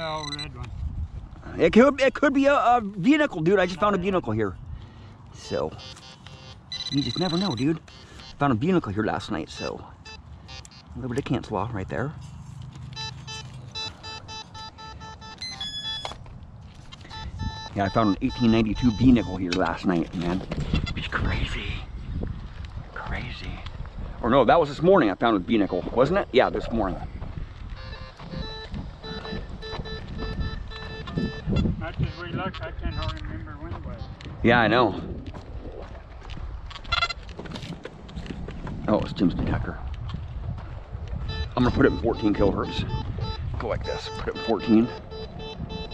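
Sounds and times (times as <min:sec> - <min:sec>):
higher detector tone: 0:00.0 - 0:00.6, 0:05.4 - 0:08.6, 0:09.5 - 0:11.0, 0:12.8 - 0:16.2, 0:16.9 - 0:19.9, 0:27.7 - 0:34.2, 0:41.2 - 0:45.9
metal detector beeps: 0:00.0 - 0:00.6, 0:05.4 - 0:08.6, 0:09.5 - 0:11.0, 0:12.8 - 0:16.3, 0:16.9 - 0:21.1, 0:27.7 - 0:34.3, 0:36.9 - 0:37.2, 0:41.2 - 0:45.9.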